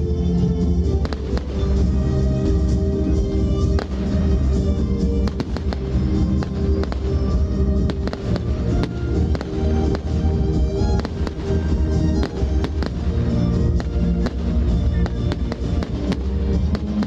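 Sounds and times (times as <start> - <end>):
music: 0.0 - 17.0
fireworks bursting: 0.9 - 17.0.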